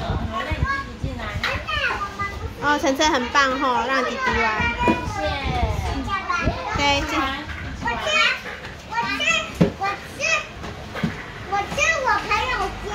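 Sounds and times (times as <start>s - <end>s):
children chattering and calling out: 0.0s - 12.9s.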